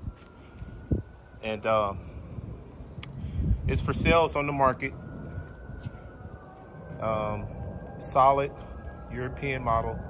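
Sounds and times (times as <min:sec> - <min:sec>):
faint siren falling in pitch: 0:00.0 - 0:10.0
low steady outdoor rumble: 0:00.0 - 0:10.0.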